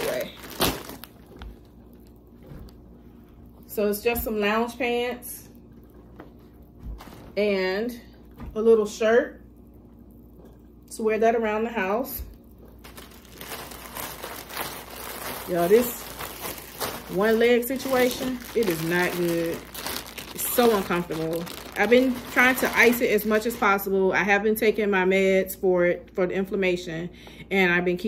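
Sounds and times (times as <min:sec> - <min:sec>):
plastic bag crinkling: 0:00.0 - 0:02.8, 0:12.7 - 0:24.0
faint steady hum: 0:00.0 - 0:28.0.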